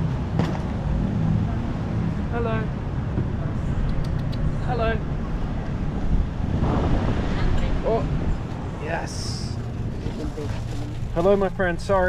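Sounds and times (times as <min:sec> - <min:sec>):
wind buffeting microphone: 0:02.9 - 0:11.6.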